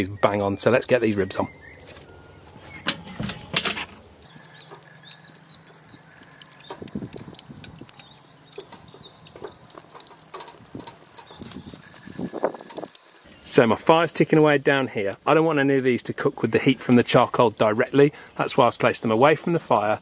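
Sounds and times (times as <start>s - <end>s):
barbecue lid lifted: 1.8s - 4.1s
metal knocks and clinks: 2.8s - 4.0s.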